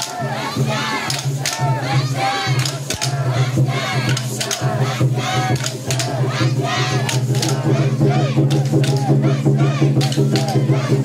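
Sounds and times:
crowd shouting together: 0.0s - 11.0s.

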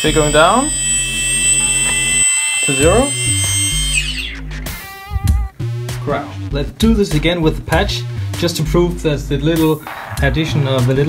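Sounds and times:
drone motors whining: 0.0s - 5.4s
music: 0.0s - 11.0s.

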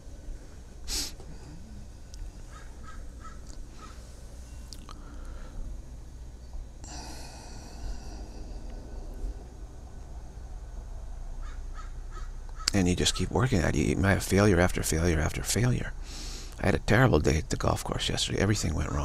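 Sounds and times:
steady low hum: 0.0s - 19.0s
bird calling: 2.4s - 4.1s, 11.4s - 13.4s.

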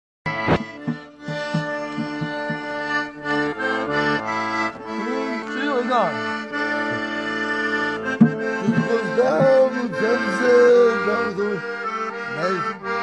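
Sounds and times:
drum beating: 0.3s - 12.8s
accordion playing held chords: 0.3s - 13.0s
man's voice: 4.1s - 6.4s, 8.4s - 13.0s.

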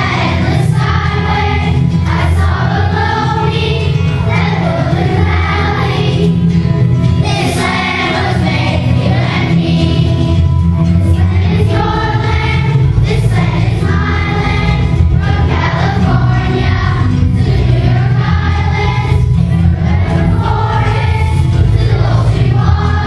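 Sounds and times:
children's choir singing: 0.0s - 23.0s
musical accompaniment: 0.0s - 23.0s.

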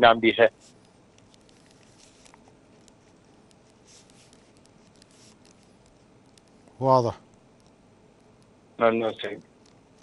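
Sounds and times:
pen writing on paper: 0.6s - 6.8s.

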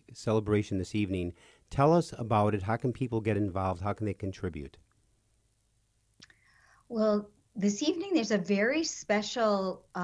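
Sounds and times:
mouth click: 6.2s - 6.4s
intake of breath: 6.4s - 6.9s.

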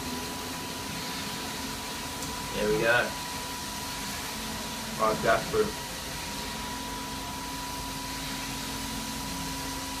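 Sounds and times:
background hum and hiss: 0.0s - 10.0s
faint constant whine: 0.0s - 10.0s.

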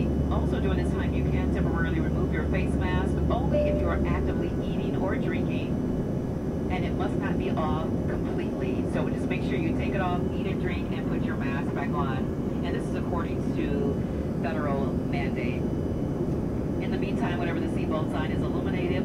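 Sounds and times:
person talking: 0.0s - 5.7s
airplane cabin engine drone: 0.0s - 19.0s.

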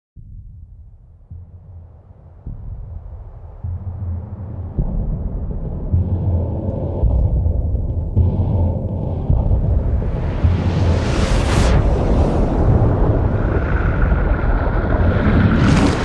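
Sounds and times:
deep rumble: 0.2s - 16.0s
rushing noise: 8.0s - 16.0s.

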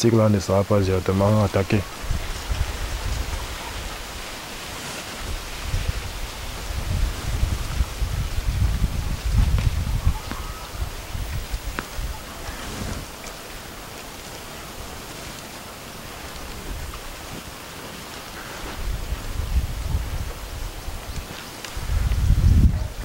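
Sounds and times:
steady hiss: 0.0s - 23.0s
wind buffeting microphone: 0.6s - 23.0s.

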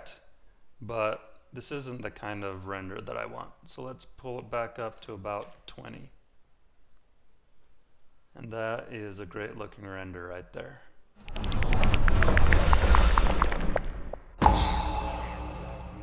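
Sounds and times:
low rumble: 11.2s - 16.0s.

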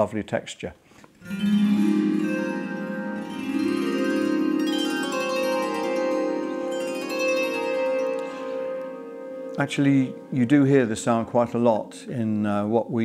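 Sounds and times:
zither strummed: 1.2s - 12.2s.

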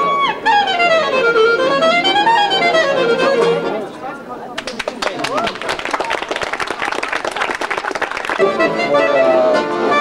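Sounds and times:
people clapping: 4.5s - 8.8s.

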